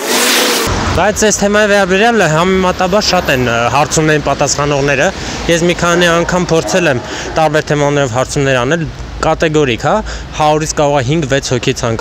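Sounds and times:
traffic on wet road: 0.0 - 12.0
man speaking into microphone: 1.0 - 12.0.

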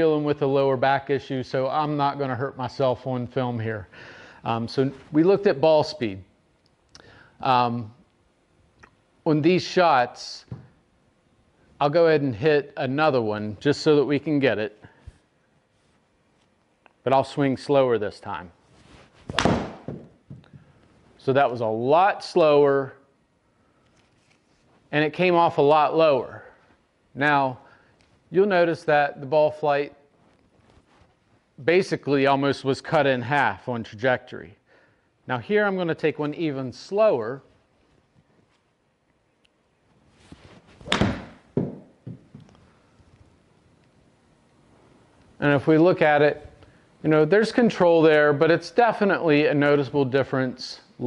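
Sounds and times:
golf club swishing: 18.6 - 19.9, 40.0 - 41.8
golf club striking ball: 19.3 - 20.0, 40.8 - 41.9
dull thuds: 19.3 - 20.5, 40.8 - 42.4.

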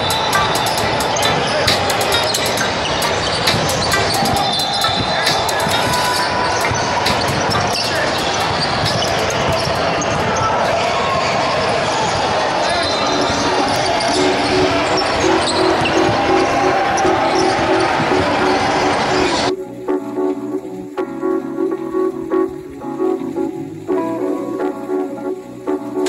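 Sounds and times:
voices in a hall: 0.0 - 26.0.

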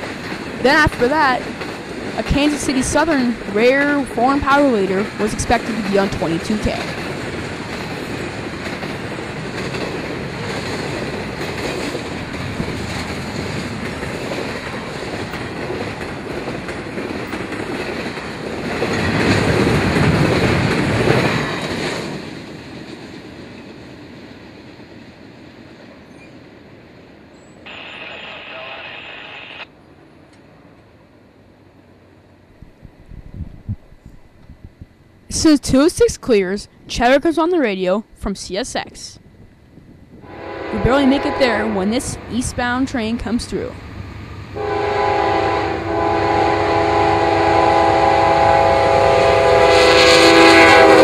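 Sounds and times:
train rumbling on rails: 0.0 - 38.2, 38.8 - 51.0.

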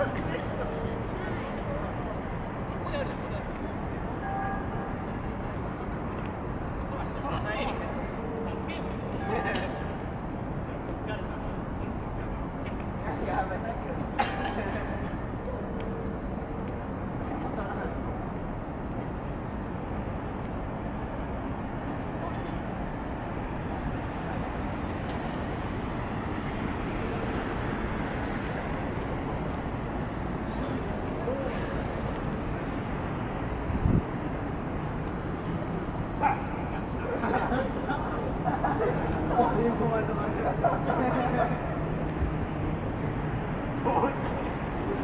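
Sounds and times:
low urban rumble: 0.0 - 45.0.

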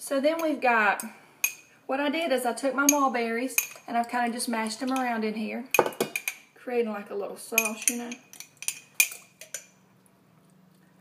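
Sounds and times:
utensil clinking against bowl: 7.6 - 9.8.

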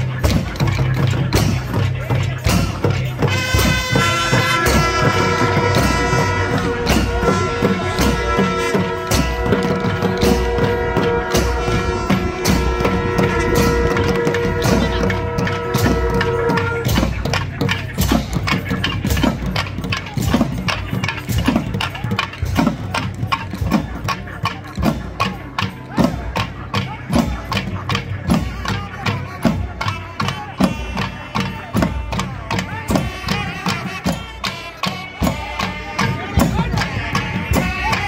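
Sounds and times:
barrel drums beating fast rhythm: 0.0 - 38.0
hand cymbals: 0.0 - 38.0
held reed horn note: 3.3 - 17.1.

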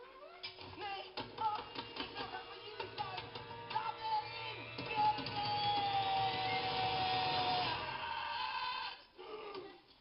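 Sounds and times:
film soundtrack held high note: 0.0 - 9.6.

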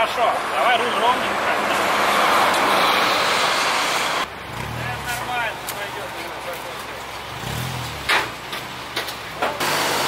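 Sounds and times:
street traffic rushing: 0.0 - 10.0
city bus passing close: 0.4 - 4.9.

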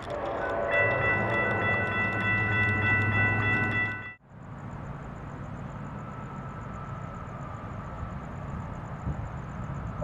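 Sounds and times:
locomotive engine running: 0.0 - 4.2
crossing bells ticking: 0.2 - 4.2.

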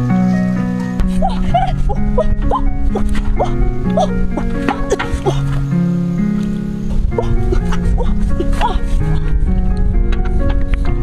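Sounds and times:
music of held notes: 0.0 - 11.0
dog yipping: 1.1 - 5.4, 7.2 - 8.8.

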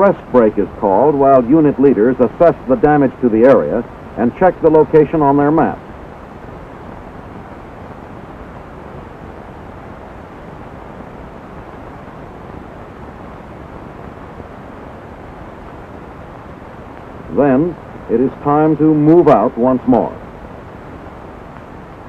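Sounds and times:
steady background noise: 0.0 - 22.0.

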